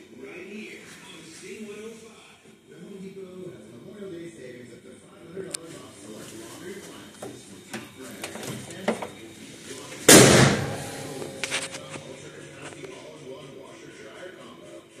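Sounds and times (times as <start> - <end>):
faint background voices: 0.0 - 15.0
car hood slamming shut: 10.1 - 11.1.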